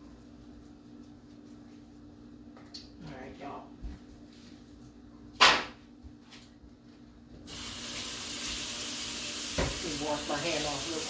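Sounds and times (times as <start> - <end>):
sharp knock: 5.4 - 5.8
tap water running into sink: 7.5 - 11.0.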